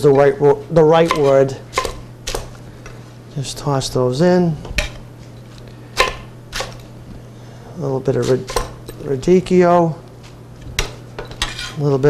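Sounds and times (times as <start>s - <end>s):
knife chopping on wooden block: 1.0s - 2.5s.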